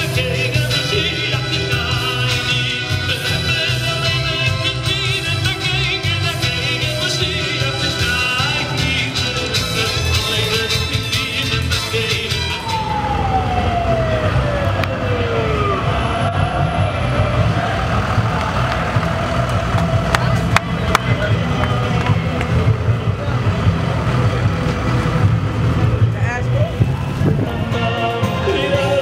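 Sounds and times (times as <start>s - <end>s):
hubbub of large crowd: 0.0s - 29.0s
siren gliding down: 12.1s - 20.6s.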